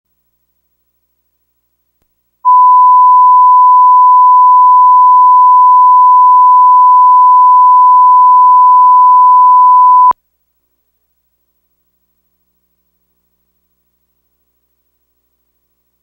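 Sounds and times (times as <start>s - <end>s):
steady pure test tone beep: 2.5s - 10.2s.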